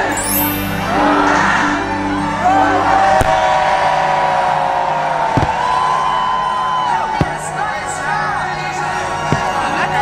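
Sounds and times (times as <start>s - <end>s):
music over loudspeakers: 0.0s - 4.2s, 7.0s - 10.0s
firework bangs: 5.2s - 7.8s.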